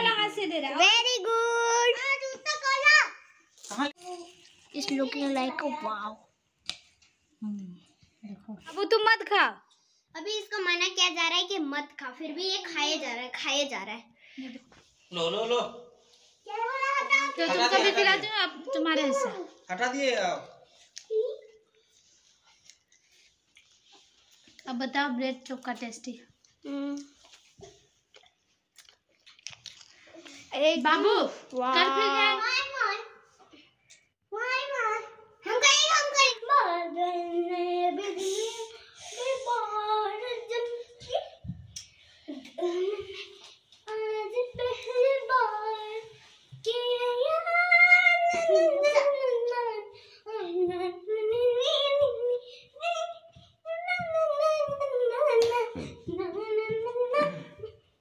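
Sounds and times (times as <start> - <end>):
chewing crunchy snack: 28.1 - 30.1
child singing slow melody: 43.8 - 57.8.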